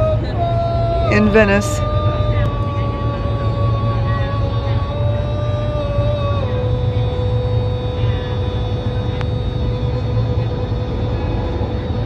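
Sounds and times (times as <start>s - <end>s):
person singing a long held note: 0.0s - 12.0s
steady low hum: 0.0s - 12.0s.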